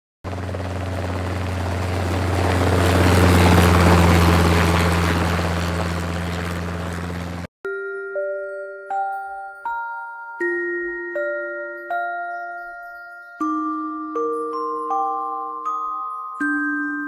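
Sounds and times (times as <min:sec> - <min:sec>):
helicopter rotor chop: 0:00.2 - 0:07.5.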